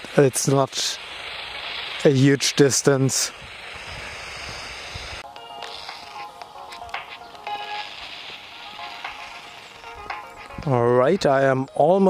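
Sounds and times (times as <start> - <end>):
radio hiss: 0.0 - 11.8
music from small radio speaker: 4.1 - 11.8.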